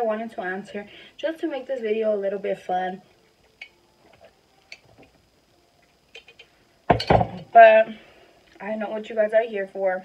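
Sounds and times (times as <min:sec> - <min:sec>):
glass jar set down: 0:06.9 - 0:07.4.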